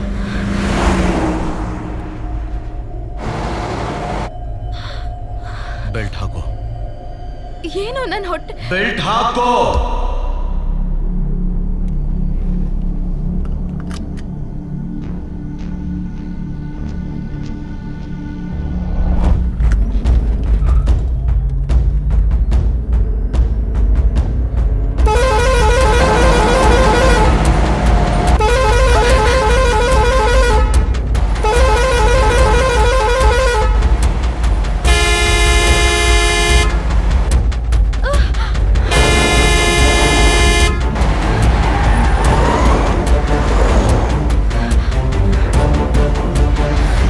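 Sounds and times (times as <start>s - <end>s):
deep rumble: 18.4s - 47.0s
truck horns honking: 25.0s - 37.3s, 38.9s - 44.7s.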